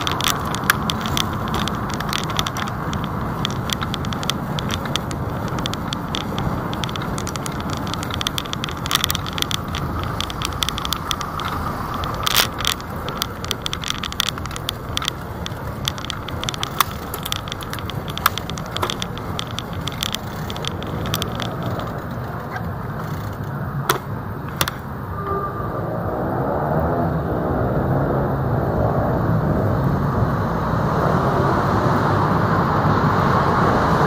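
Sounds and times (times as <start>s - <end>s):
bicycle rattling and clicking: 0.0s - 25.5s
road traffic rumble: 0.0s - 34.0s.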